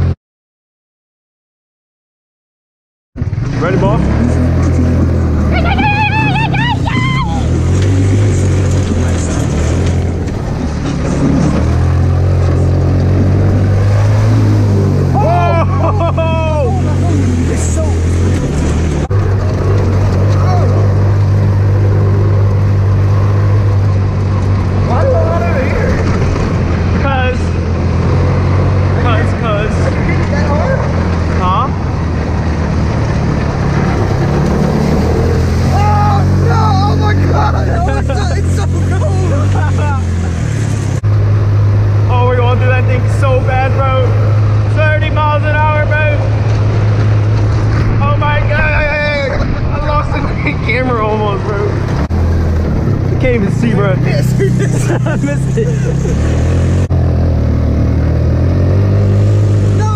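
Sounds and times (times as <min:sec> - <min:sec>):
go-kart engine droning: 0:03.2 - 0:59.9
voices shouting: 0:05.2 - 0:08.3, 0:14.1 - 0:18.6, 0:19.2 - 0:21.3, 0:24.2 - 0:27.3, 0:34.1 - 0:40.2.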